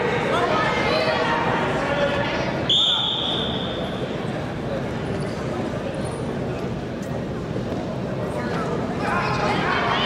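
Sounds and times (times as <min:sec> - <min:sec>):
murmur of voices: 0:00.0 - 0:10.0
high whistle-like tone: 0:02.7 - 0:04.0.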